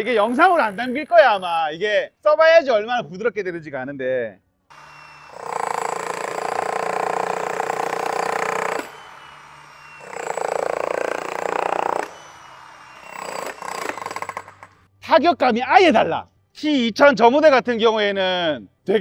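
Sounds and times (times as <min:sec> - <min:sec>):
demolition breaker hammering concrete: 0:04.7 - 0:14.7.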